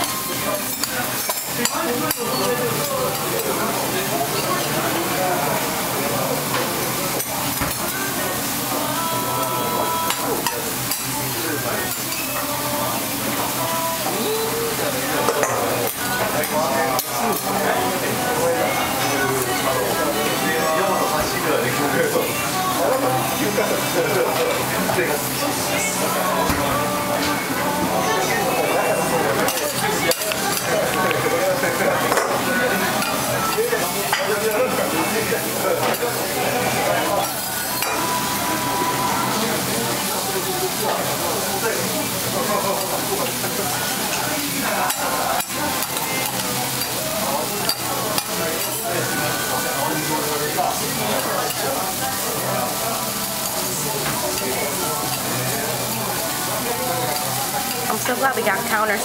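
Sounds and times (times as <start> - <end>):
noodles sizzling on griddle: 0.0 - 59.0.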